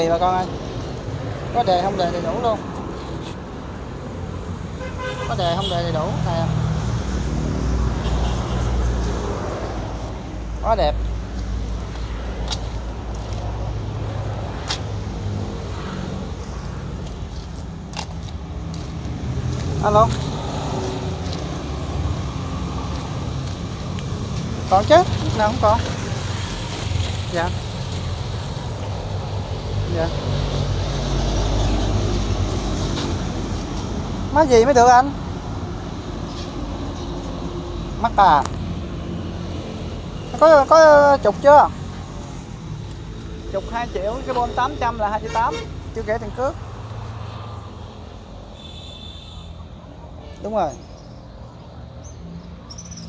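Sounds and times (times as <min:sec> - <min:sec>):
traffic noise: 0:00.0 - 0:53.0
motorbike passing: 0:13.1 - 0:35.1.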